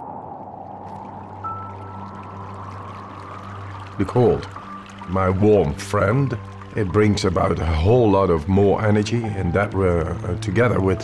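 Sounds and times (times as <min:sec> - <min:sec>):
stream rushing over rocks: 0:01.0 - 0:07.5
music with low drone: 0:01.2 - 0:11.0.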